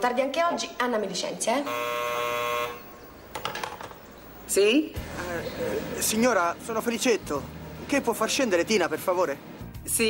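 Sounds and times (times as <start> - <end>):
intercom buzzer: 1.6 - 2.9.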